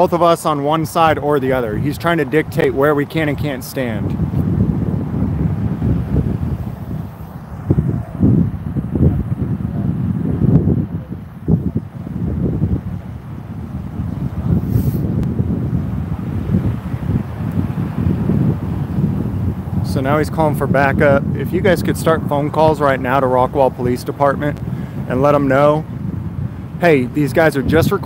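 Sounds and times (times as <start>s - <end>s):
wind buffeting microphone: 0.0s - 28.0s.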